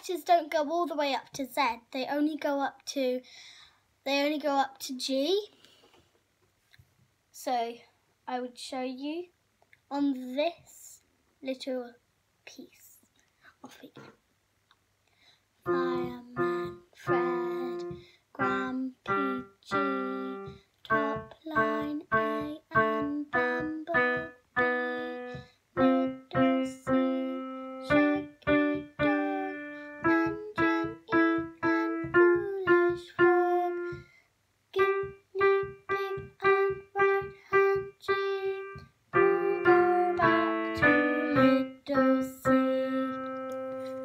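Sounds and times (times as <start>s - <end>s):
piano chord: 15.7s - 34.0s, 38.6s - 44.0s
piano single notes: 15.7s - 34.0s, 34.8s - 44.0s.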